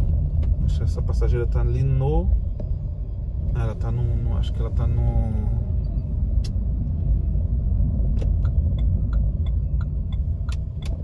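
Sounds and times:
road rumble inside car cabin: 0.0 - 11.0
turn signal ticking: 5.7 - 11.0.

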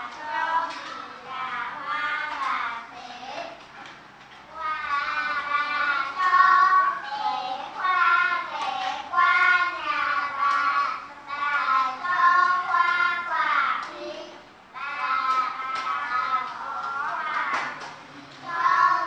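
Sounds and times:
children chanting text aloud: 0.0 - 3.8, 4.4 - 19.0.

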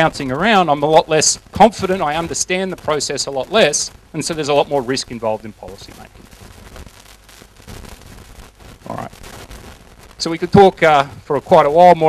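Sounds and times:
person speaking: 0.0 - 6.2, 8.9 - 9.1
faint crackling: 0.0 - 12.0
recording hiss: 0.0 - 12.0.

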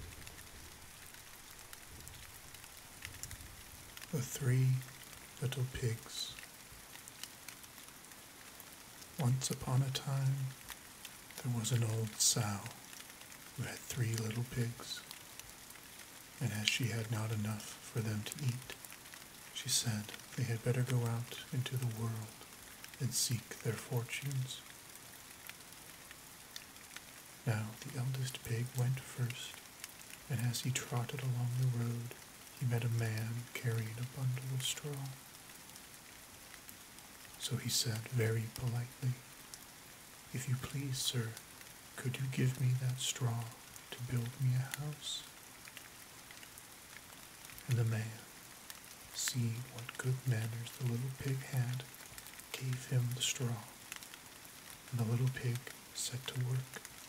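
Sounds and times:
light rain hiss: 0.0 - 57.0
raindrop ticks: 0.0 - 57.0.

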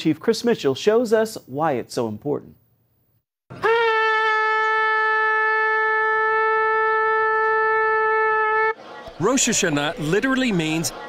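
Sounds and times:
shofar blown in long note: 3.6 - 8.8.

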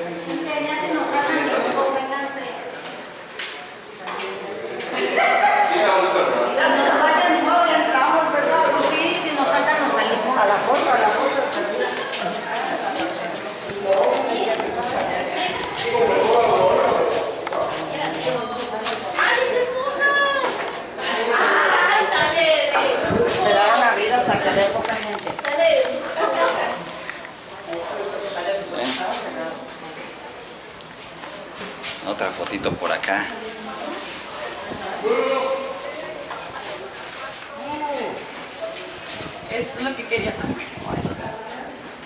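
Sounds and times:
crowd chatter: 0.0 - 42.0
group of people talking: 0.0 - 42.0.

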